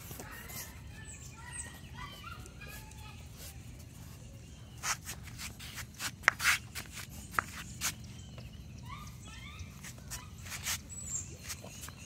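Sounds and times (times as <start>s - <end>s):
paws ticking on concrete: 0.0s - 12.0s.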